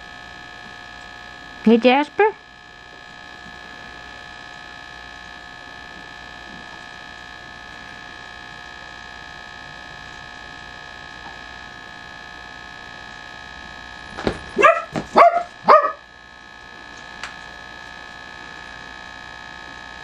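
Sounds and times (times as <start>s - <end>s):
electrical hum: 0.0s - 20.0s
high whine: 0.0s - 20.0s.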